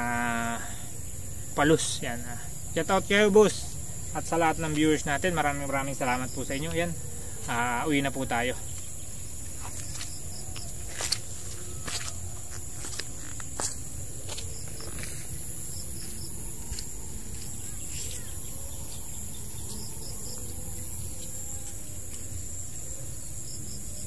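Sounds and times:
shrill insect chorus: 0.0s - 24.0s.

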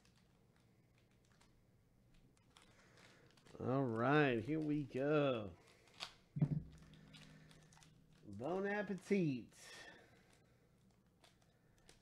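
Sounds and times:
foil crinkling: 0.0s - 12.0s.

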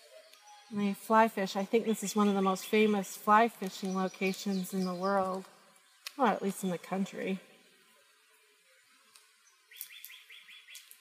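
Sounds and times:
bird chirping: 0.0s - 7.6s, 9.4s - 11.0s.

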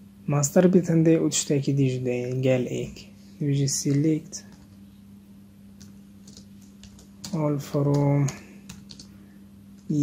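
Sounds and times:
steady low hum: 0.0s - 10.0s
person speaking: 0.3s - 4.8s, 6.2s - 9.1s, 9.8s - 10.0s
keyboard keystrokes: 5.8s - 9.1s.

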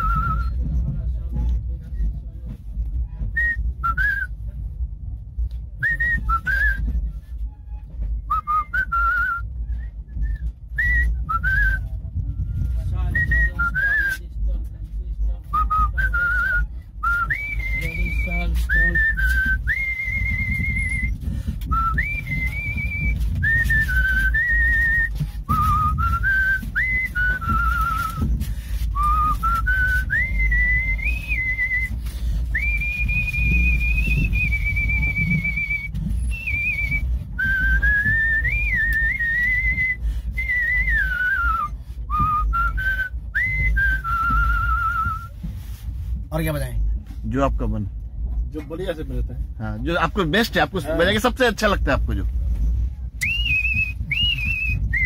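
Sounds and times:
man whistling a melody: 0.0s - 0.8s, 3.3s - 4.4s, 5.8s - 7.2s, 8.2s - 14.2s, 15.5s - 45.4s, 53.2s - 55.0s
steady low rumble: 0.0s - 55.0s.

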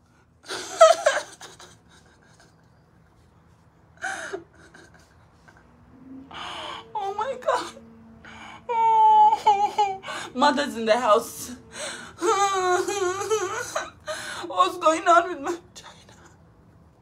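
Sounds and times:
woman whining: 6.1s - 15.0s
woman gasping and whimpering: 6.3s - 7.0s.

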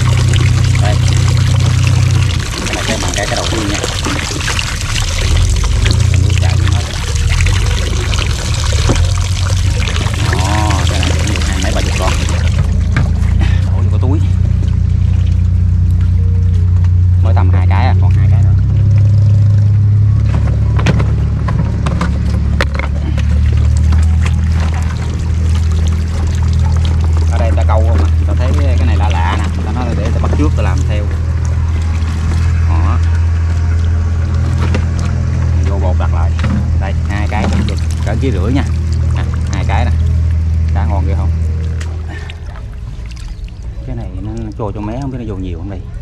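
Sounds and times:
steady low hum: 0.0s - 46.0s
water streaming and splashing: 0.0s - 46.0s.

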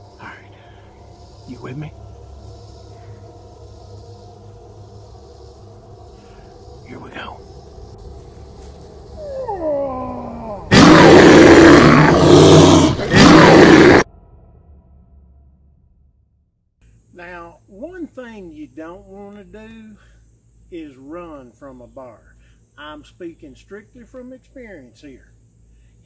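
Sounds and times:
distorted bear roar: 9.1s - 14.1s.

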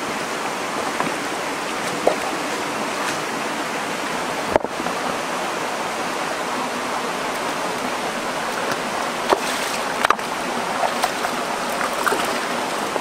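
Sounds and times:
stream running over stones: 0.0s - 13.0s.

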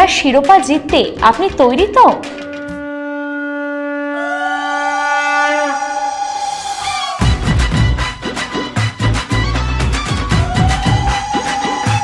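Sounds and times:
high conch shell note: 2.4s - 8.0s
low conch shell note: 2.4s - 8.0s.

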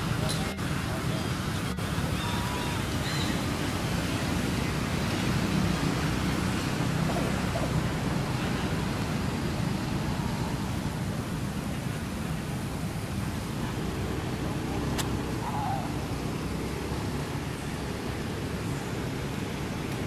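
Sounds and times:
steady outdoor rushing noise: 0.0s - 20.0s.

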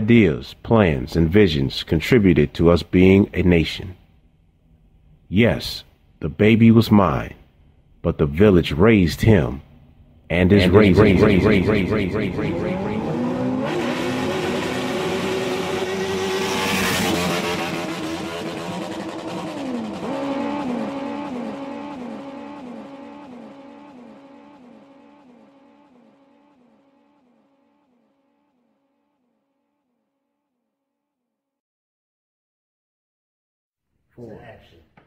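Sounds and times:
racing engines revving: 10.3s - 26.9s
engines whooshing past: 10.4s - 24.0s.

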